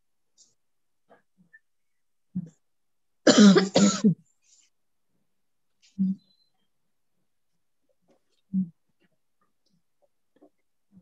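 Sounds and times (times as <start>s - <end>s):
person coughing: 3.3s - 4.2s.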